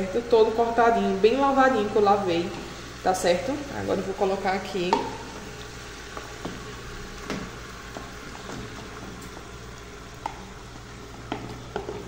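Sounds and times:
meat sizzling in a pot: 0.0s - 12.0s.

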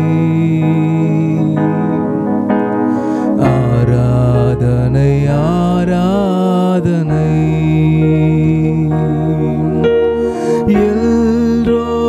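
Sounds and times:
keyboard sustaining chord: 0.0s - 12.0s.

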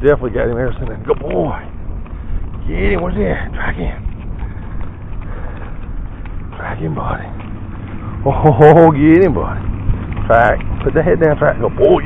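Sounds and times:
wind on microphone: 0.0s - 8.1s
footsteps on asphalt: 0.0s - 12.0s.

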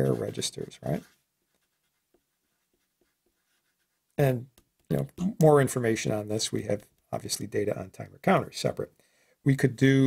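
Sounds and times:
marker writing on paper: 0.0s - 4.0s.

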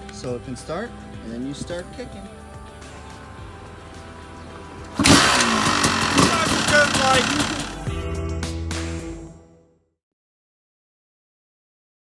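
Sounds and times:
dirt bike engine kick-started: 4.9s - 7.9s
motorbike engine revving loudly: 4.9s - 7.9s.

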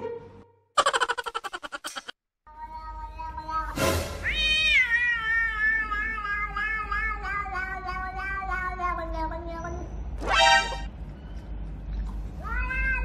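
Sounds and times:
cat meowing: 2.6s - 9.8s, 12.4s - 13.0s.

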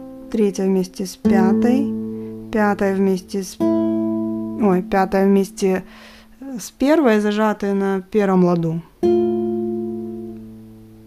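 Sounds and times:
classical guitar notes ringing: 0.0s - 6.2s, 9.0s - 11.0s.

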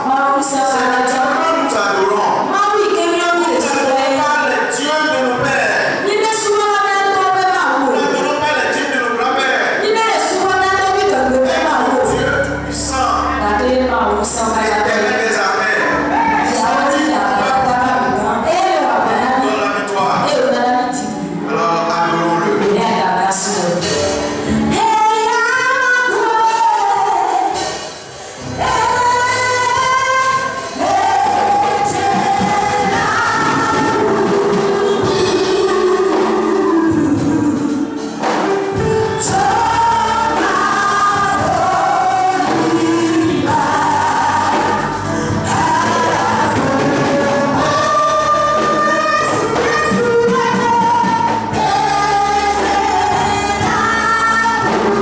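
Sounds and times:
woman singing into a microphone: 0.0s - 1.7s, 2.4s - 4.5s, 6.0s - 8.2s, 9.8s - 12.4s, 13.3s - 14.9s, 16.0s - 21.5s, 22.5s - 38.4s, 39.0s - 55.0s
instrumental accompaniment: 0.0s - 55.0s.

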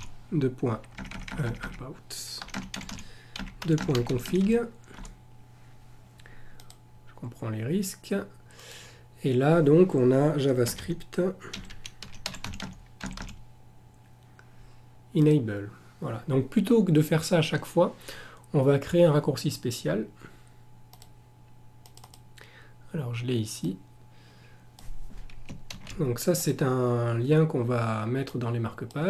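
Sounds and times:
computer keyboard keystrokes: 0.8s - 1.8s, 2.4s - 5.2s, 11.5s - 13.4s, 21.8s - 22.2s, 25.3s - 26.0s.

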